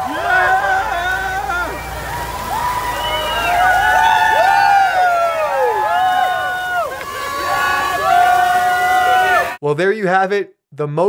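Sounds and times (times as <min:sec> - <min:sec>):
men yelling and whooping: 0:00.0 - 0:09.6.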